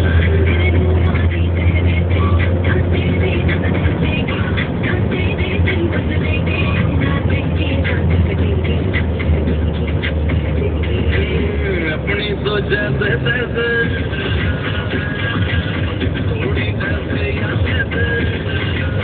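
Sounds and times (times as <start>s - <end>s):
music playing: 0.0s - 19.0s
vehicle engine and tyres drone: 0.0s - 19.0s.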